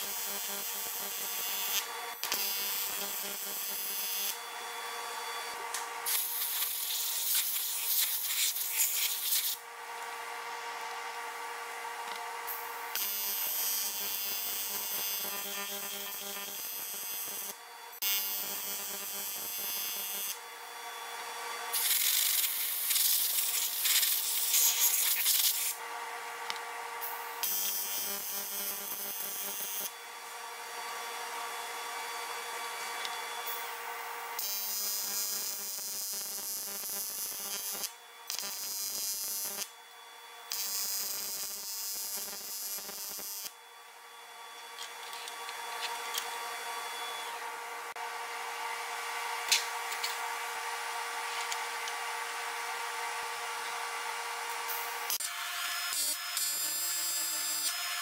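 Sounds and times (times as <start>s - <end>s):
welding arc buzzing: 0.0s - 9.6s, 12.1s - 20.5s, 21.2s - 25.8s, 26.4s - 31.5s, 32.5s - 39.8s, 40.5s - 43.6s, 48.8s - 58.0s.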